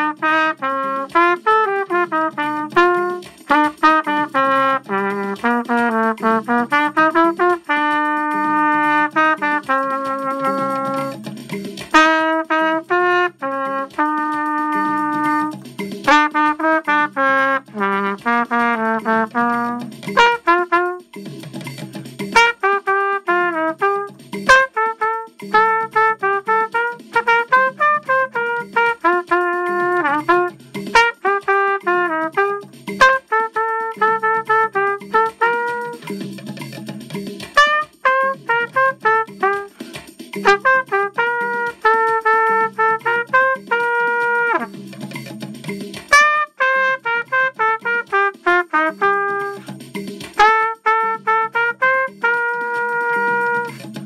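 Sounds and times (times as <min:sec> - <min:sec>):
trumpet playing dance melody: 0:00.0 - 0:36.4, 0:37.1 - 0:54.0.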